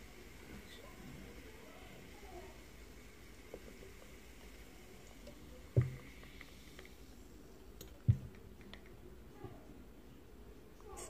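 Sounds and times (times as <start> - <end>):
cola pouring and fizzing: 0.0 - 9.0.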